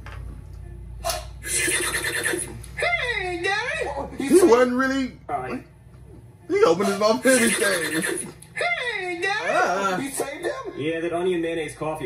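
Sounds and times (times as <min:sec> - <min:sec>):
high wavering cry: 0:01.0 - 0:02.5.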